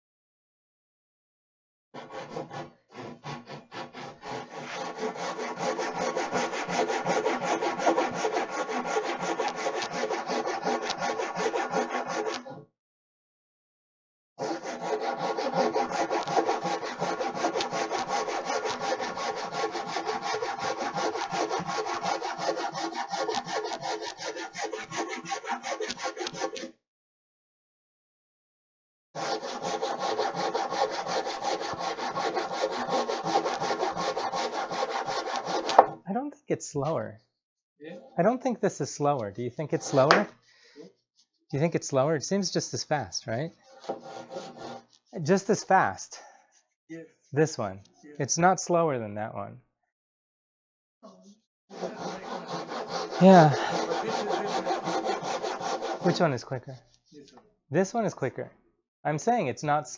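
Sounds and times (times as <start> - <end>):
hand saw cutting wood: 2.0 - 12.5, 14.4 - 26.8, 29.2 - 36.0, 39.2 - 40.4, 43.5 - 46.3, 51.7 - 57.3.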